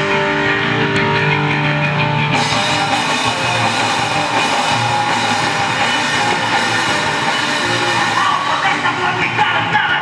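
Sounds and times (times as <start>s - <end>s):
bass guitar: 0.0s - 10.0s
drum kit: 0.0s - 10.0s
electric guitar: 0.0s - 10.0s.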